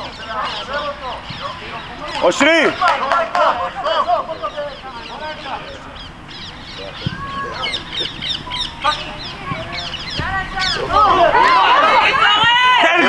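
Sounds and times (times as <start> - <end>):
children and coaches shouting: 6.8 - 8.0, 8.7 - 13.0.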